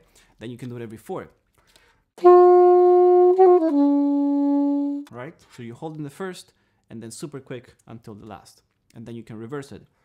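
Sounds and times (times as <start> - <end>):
alto saxophone playing: 2.2 - 5.1.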